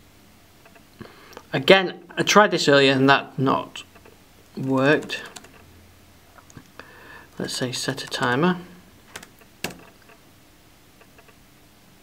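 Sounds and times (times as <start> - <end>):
keyboard keys clicking: 4.6 - 5.6, 9.1 - 10.2.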